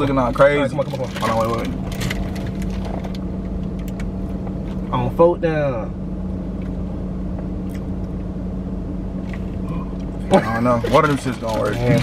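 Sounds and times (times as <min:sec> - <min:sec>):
low hum of idling car: 0:00.0 - 0:12.0.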